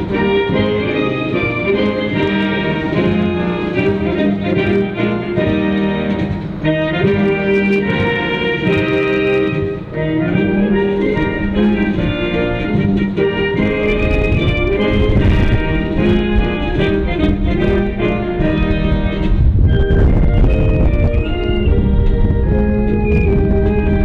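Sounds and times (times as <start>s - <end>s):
wind band playing: 0.0s - 24.0s.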